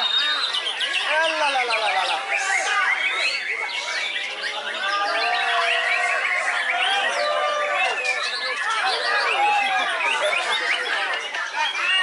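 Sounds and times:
birds singing in chorus: 0.0s - 12.0s.

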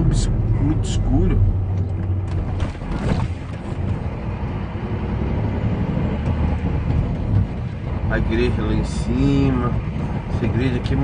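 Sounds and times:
low road rumble: 0.0s - 11.0s.

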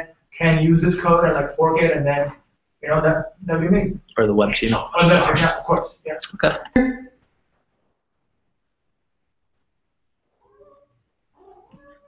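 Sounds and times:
faint voice-like calls: 10.3s - 12.0s.

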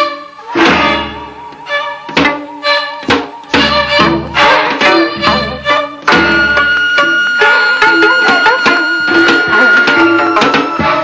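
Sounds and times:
wavering sustained melody: 0.1s - 11.0s
loud drum stroke: 3.0s - 7.5s.

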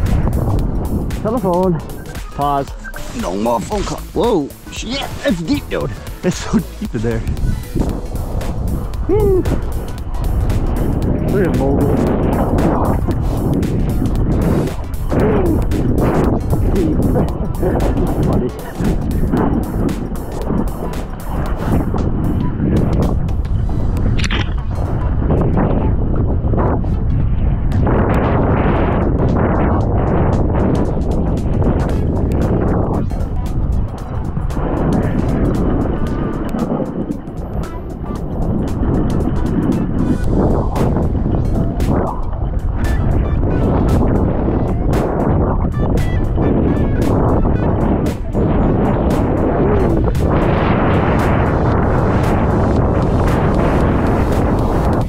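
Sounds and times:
wind buffeting microphone: 0.0s - 55.0s
snowboard scraping through snow: 50.2s - 55.0s.

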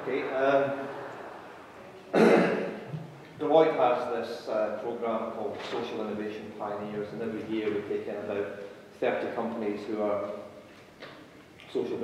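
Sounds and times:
man speaking: 0.0s - 0.9s, 3.4s - 10.4s
man clearing throat: 2.1s - 2.7s.

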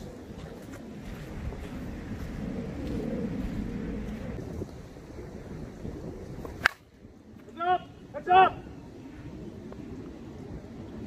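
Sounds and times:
wind rumble on microphone: 0.0s - 11.0s
bat cracking against ball: 6.6s - 6.9s.

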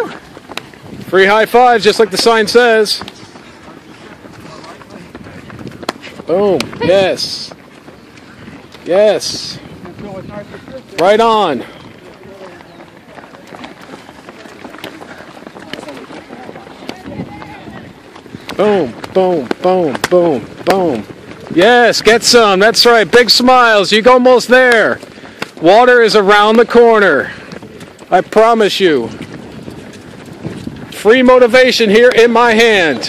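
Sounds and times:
faint voices: 0.0s - 33.0s
running shoes slapping on concrete: 0.0s - 33.0s.

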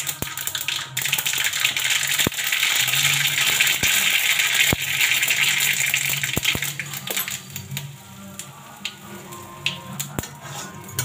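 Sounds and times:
vegetables sizzling in a pan: 0.0s - 11.0s.

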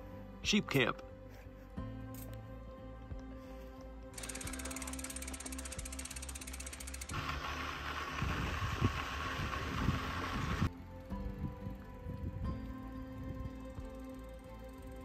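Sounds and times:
soft background music: 0.0s - 15.0s
bicycle rushing over dirt trail: 4.2s - 12.8s
bicycle freewheel hub clicking: 4.2s - 15.0s.

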